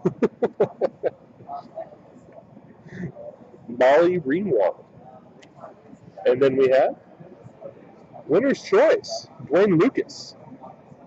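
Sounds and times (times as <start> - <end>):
man laughing: 0.0 - 1.2.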